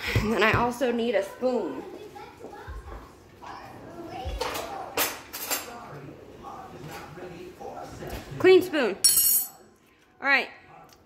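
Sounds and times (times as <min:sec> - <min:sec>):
metal cutlery clinking: 0:05.0 - 0:05.8, 0:09.0 - 0:09.7.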